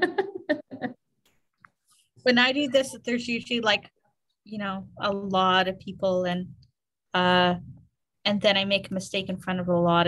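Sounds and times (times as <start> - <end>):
woman laughing: 0.0 - 1.0.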